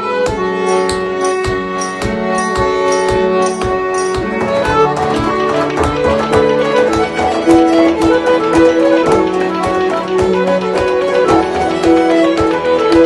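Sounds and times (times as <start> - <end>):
accordion: 0.0 - 13.0
cello: 0.0 - 13.0
fiddle: 0.0 - 13.0
harp: 0.0 - 13.0
frame drum beat: 1.2 - 13.0.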